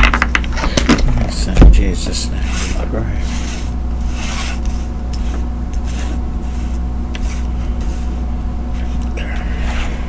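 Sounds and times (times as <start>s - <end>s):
steady low hum: 0.0s - 10.0s
cards scraping on wood: 2.4s - 10.0s.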